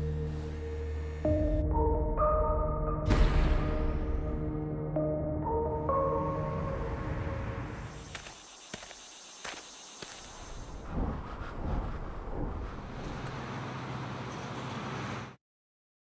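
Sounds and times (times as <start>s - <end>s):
whooshes: 10.6s - 13.3s.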